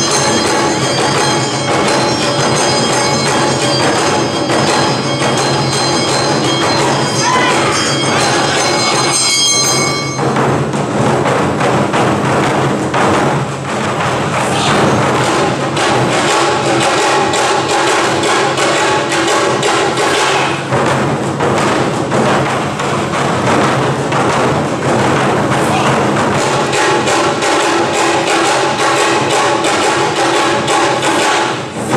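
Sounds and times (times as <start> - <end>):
taiko drums beating: 0.0 - 31.9
bamboo flute high notes: 6.6 - 10.2.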